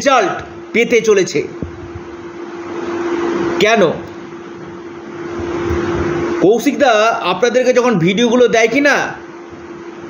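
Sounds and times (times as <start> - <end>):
constant low hum: 0.0 - 10.0.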